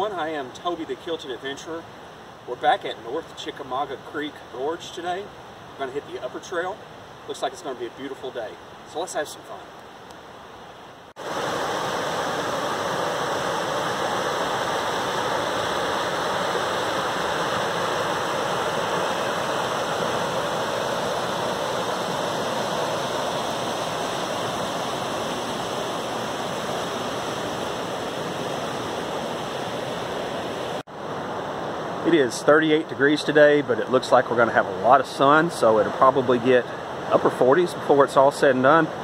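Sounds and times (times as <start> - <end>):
creek water rushing over rapids: 0.0 - 39.0.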